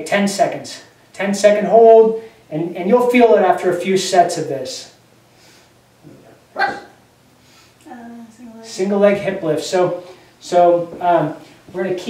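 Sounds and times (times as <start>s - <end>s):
small dog barking: 6.5s - 7.0s.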